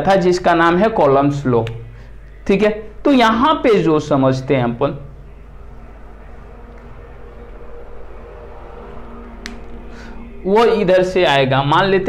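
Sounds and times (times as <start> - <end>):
steady low hum: 0.0 - 12.0
faint steady tones: 1.8 - 12.0.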